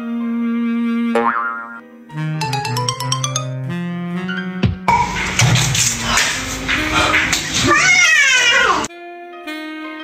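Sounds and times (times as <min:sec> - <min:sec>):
cartoon boing sound effect: 0:01.1 - 0:01.8
playful background music: 0:01.1 - 0:04.9
short plucked notes: 0:02.4 - 0:03.9.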